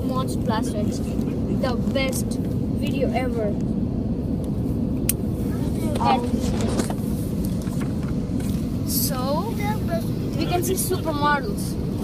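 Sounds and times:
airliner cabin noise: 0.0 - 12.0.

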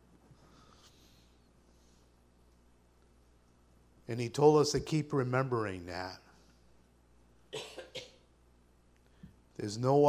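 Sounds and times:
person coughing: 7.5 - 8.3.

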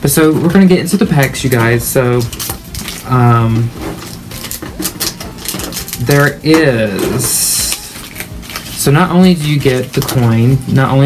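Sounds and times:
packaging clicks and rustles: 0.1 - 11.0.

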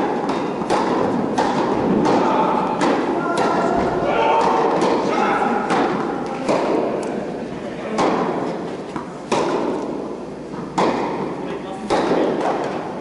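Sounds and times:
rackets hitting tennis ball: 0.0 - 13.0
voices: 2.0 - 8.5.

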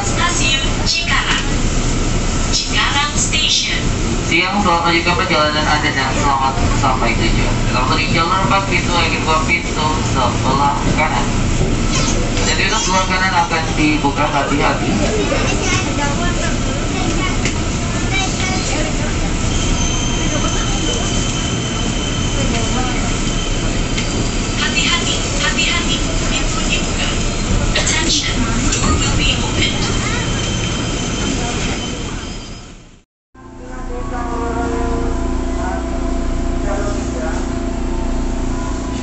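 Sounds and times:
train wheels on track: 0.0 - 33.0
standing train hum: 0.0 - 39.0.

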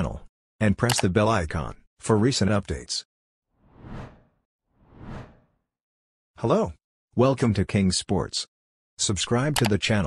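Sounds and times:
whoosh sound effects: 3.6 - 5.6.

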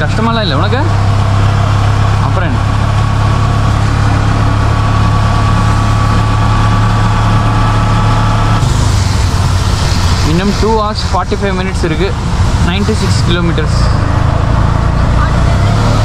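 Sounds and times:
auto rickshaw engine running: 0.0 - 16.0
tyres on wet road: 0.0 - 16.0
rain hissing: 8.6 - 13.5.

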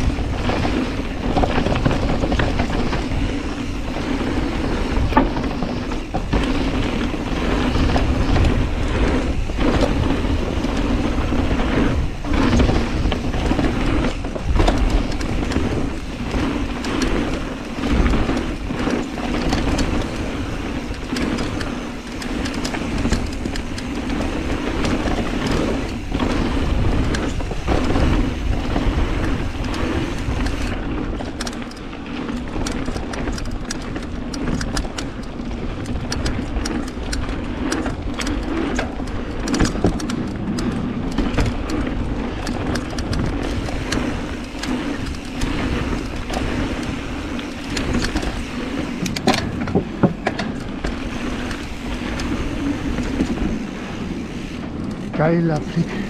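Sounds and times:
bike knocks and rattles: 0.0 - 56.0
bike tyres rumbling on gravel: 0.0 - 56.0.

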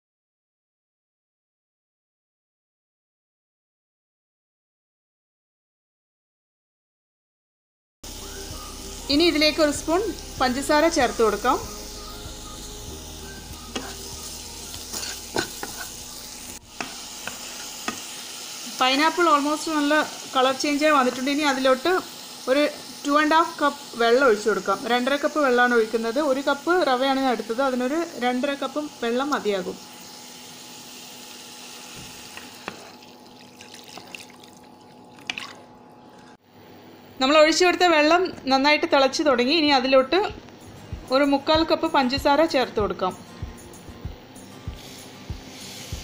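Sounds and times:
pineapple sizzling in a pan: 8.1 - 35.7, 44.4 - 46.0
spatula scraping and tapping: 13.7 - 14.1, 14.7 - 16.0, 16.8 - 18.1, 32.0 - 33.0
water pouring into a pan: 32.8 - 35.7.

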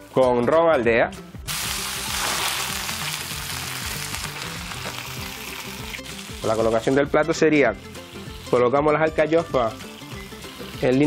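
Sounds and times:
soft background music: 0.0 - 11.0
food sizzling in frying pan: 1.5 - 7.1, 7.8 - 11.0.

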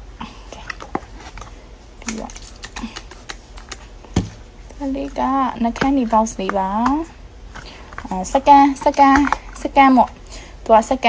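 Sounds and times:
silicone mold clicking and crackling: 4.7 - 10.2.

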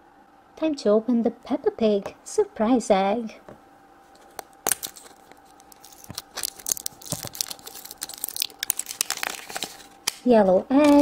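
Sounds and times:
plastic wrapper crinkling: 4.1 - 11.0.

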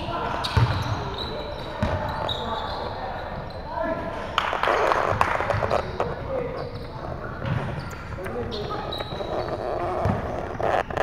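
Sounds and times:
players' voices in a hall: 0.0 - 11.0
basketball bouncing on wooden floor: 0.6 - 0.9, 1.8 - 2.1, 8.6 - 11.0.

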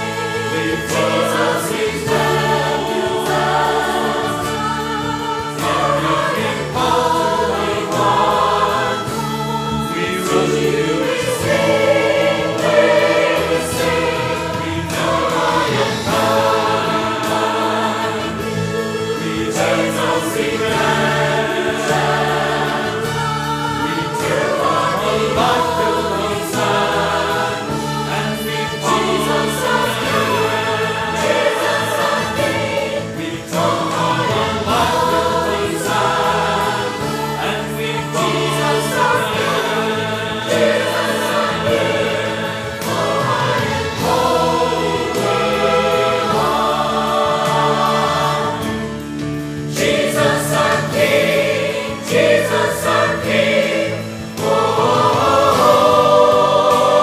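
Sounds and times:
church choir singing in parts: 0.0 - 57.0.

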